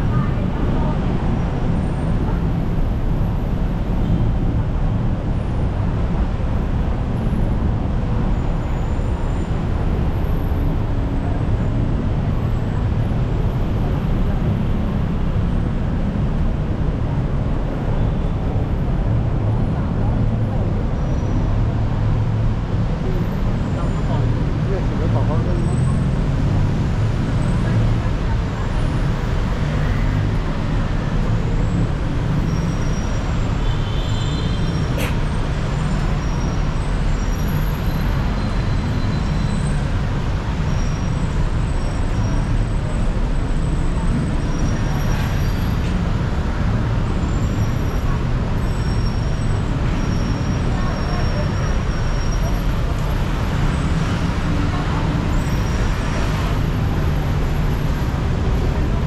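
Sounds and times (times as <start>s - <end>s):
road traffic rumble: 0.0s - 59.0s.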